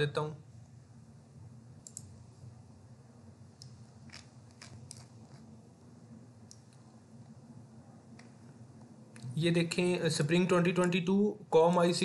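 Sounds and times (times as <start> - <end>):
low steady hum: 0.0 - 12.0
computer mouse clicks: 1.8 - 2.1.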